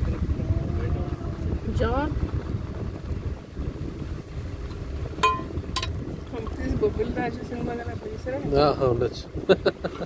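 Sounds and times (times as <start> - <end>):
vehicle engine and road rumble: 0.0 - 10.0
wind buffeting microphone: 0.0 - 10.0.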